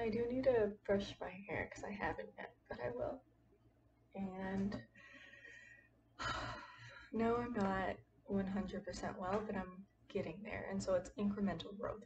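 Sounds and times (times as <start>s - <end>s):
woman speaking: 0.0s - 3.2s, 4.2s - 4.9s, 6.2s - 12.0s
woman breathing in: 4.9s - 7.1s.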